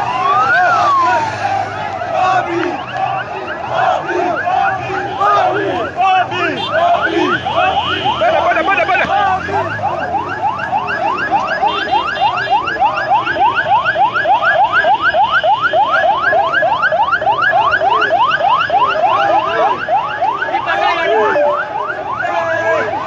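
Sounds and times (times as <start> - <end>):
electronic siren yelping: 0.0 - 23.0.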